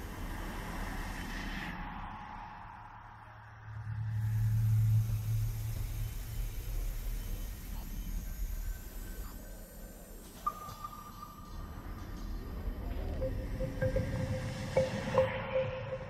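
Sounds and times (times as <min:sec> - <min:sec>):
thin steady tone: 0:03.7 - 0:16.0.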